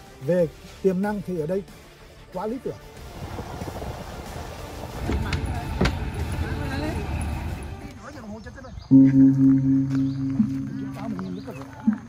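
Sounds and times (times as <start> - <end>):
bird-like chirps: 8.1 - 12.0
deep bell-like ringing tone: 8.9 - 11.4
soft bowl strikes: 8.9 - 11.4.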